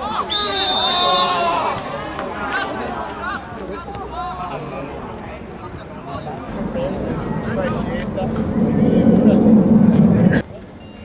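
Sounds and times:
low rumble: 6.5 - 10.5.

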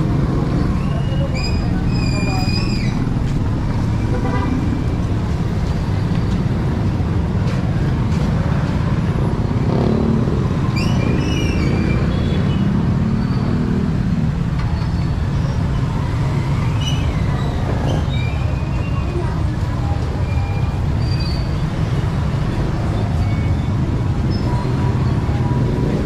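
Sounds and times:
traffic rumble: 0.0 - 26.0.

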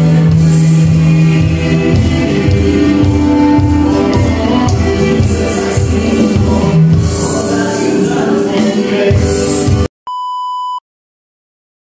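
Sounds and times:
electronic drum band music: 0.0 - 9.9
short electronic beep: 10.1 - 10.8.

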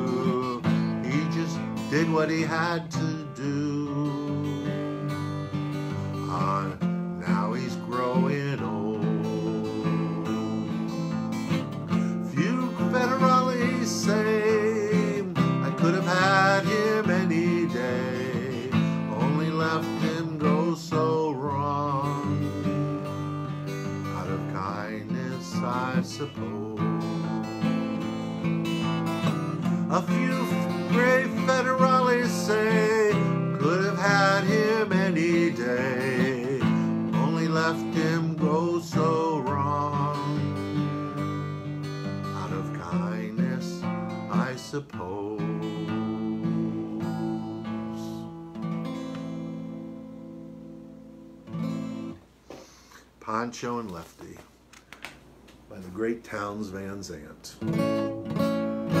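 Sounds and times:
acoustic guitar strummed and picked: 0.0 - 54.4, 56.6 - 59.0.

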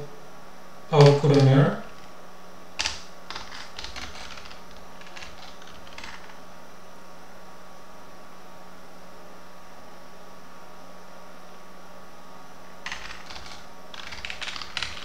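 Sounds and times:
faint low hum: 0.0 - 15.0
computer keyboard typing: 0.9 - 2.1, 2.8 - 6.4, 12.8 - 15.0.

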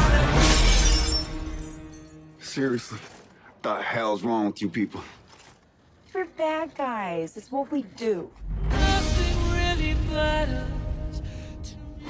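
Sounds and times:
glass window shattering: 0.0 - 3.4
glass shards tinkling: 0.5 - 2.4
loud music: 8.5 - 11.0.

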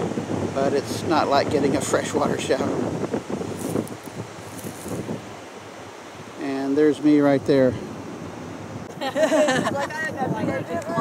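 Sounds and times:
ocean surf rushing: 0.0 - 11.0
wind on microphone: 0.0 - 11.0.

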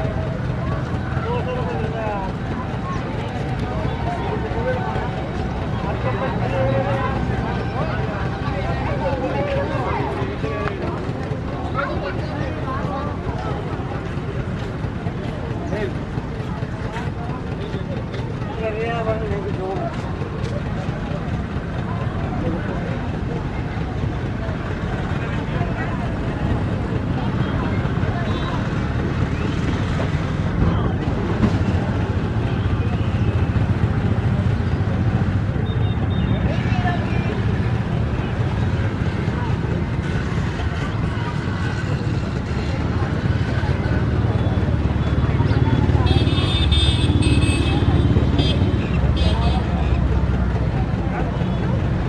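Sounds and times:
low engine rumble: 0.0 - 52.0.

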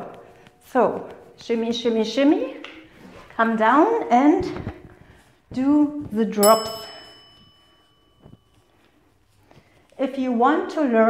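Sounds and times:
thin high ringing tone: 6.4 - 8.9.

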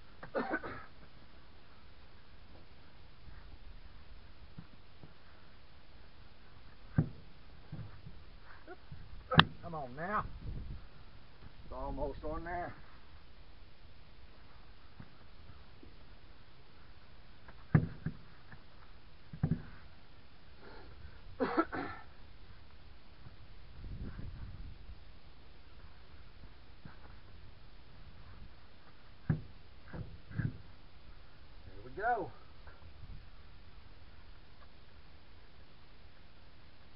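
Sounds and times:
heavy tire knocks and thumps: 6.9 - 8.2, 17.5 - 18.4, 19.4 - 19.8, 29.2 - 30.7
soft low rumble: 22.1 - 31.7.

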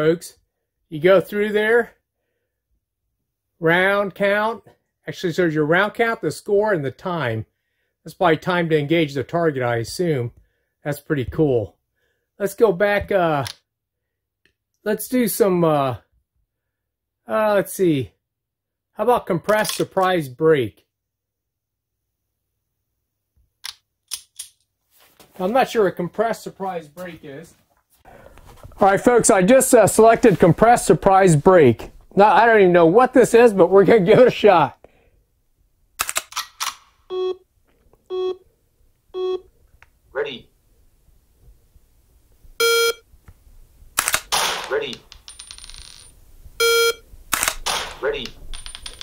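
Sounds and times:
recorded voice speaking: 0.0 - 2.0, 3.6 - 11.8, 12.4 - 13.6, 14.8 - 16.1, 17.2 - 18.2, 18.9 - 20.9, 25.4 - 27.6, 28.7 - 34.8, 40.1 - 40.6, 44.7 - 45.1, 48.0 - 48.4
short electronic beep: 42.6 - 43.0, 46.6 - 47.0
sharp gunshot crack: 44.0 - 45.0, 47.4 - 48.2.

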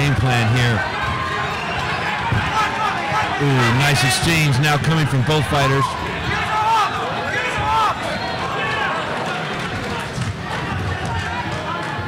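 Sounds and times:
crowd murmur: 0.0 - 12.0
people shouting: 0.8 - 4.2, 5.6 - 12.0.

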